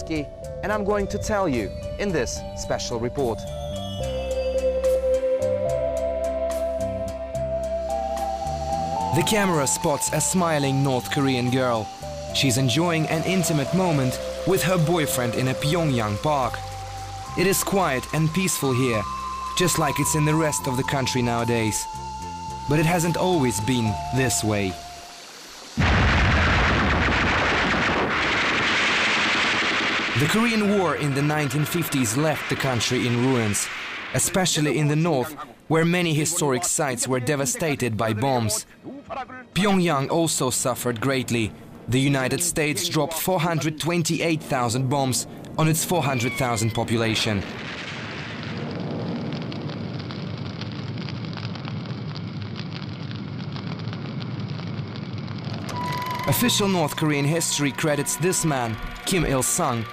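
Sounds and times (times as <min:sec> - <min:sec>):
music with held tone: 0:00.0 - 0:25.4
large fire crackling: 0:07.4 - 0:59.9
machine-gun fire: 0:25.8 - 0:34.1.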